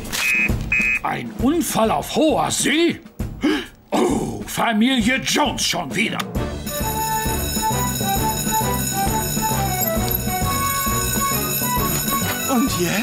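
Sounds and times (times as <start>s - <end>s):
background music with beat: 0.0s - 1.6s, 6.2s - 13.0s
alarm bell ringing: 6.6s - 13.0s.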